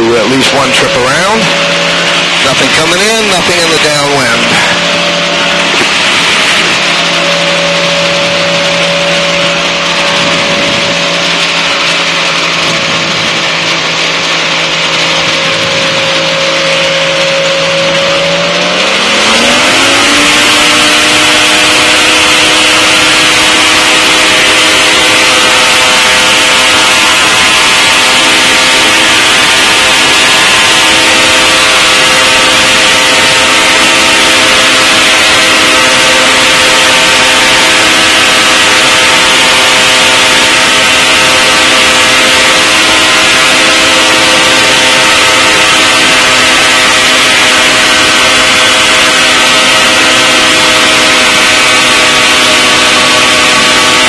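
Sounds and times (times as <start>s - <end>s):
light aircraft engine and propeller: 0.0s - 54.0s.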